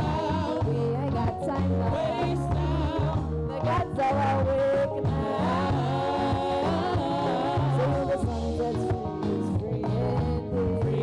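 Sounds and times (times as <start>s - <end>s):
drums: 0.0s - 11.0s
keyboard: 0.0s - 11.0s
people singing together: 0.0s - 11.0s.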